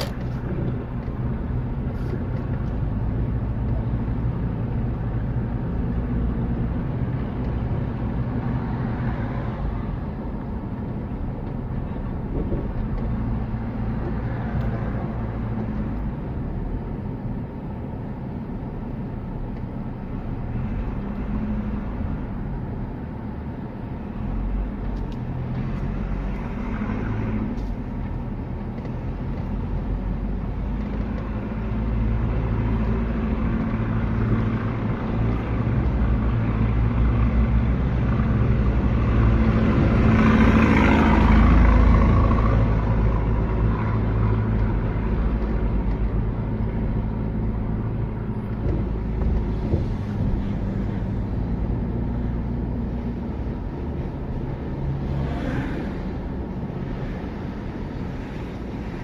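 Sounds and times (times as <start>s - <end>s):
car engine: 0.0s - 59.0s
road noise inside car: 0.0s - 59.0s.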